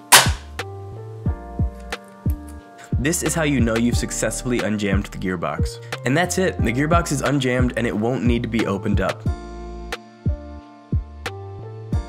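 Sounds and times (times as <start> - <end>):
gearbox spring snap: 0.0 - 0.6
hip-hop music with deep kick: 0.1 - 2.4, 6.6 - 12.0.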